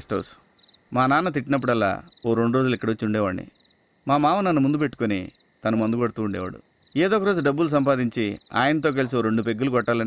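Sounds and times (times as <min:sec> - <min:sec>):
man talking: 0:00.0 - 0:03.5, 0:04.1 - 0:10.0
crickets chirping: 0:00.0 - 0:10.0.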